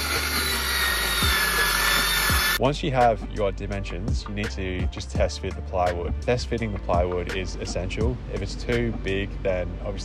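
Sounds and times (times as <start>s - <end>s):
circular saw cutting plywood: 0.0s - 2.6s
background music with a beat: 0.1s - 9.2s.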